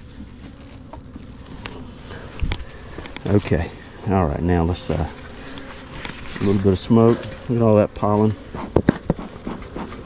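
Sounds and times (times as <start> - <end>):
honeybees humming: 0.0 - 10.0.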